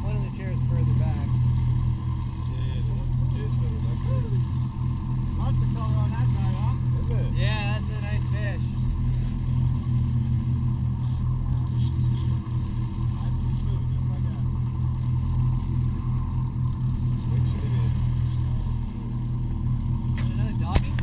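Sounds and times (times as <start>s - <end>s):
boat engines droning: 0.0s - 21.0s.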